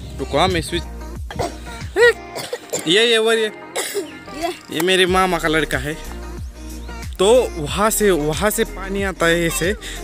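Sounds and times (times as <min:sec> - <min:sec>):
background music: 0:00.0 - 0:10.0
voices: 0:06.9 - 0:10.0.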